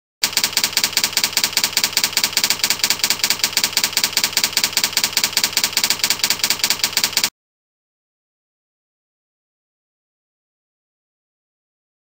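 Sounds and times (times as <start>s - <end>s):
typewriter clicks: 0.2s - 7.3s.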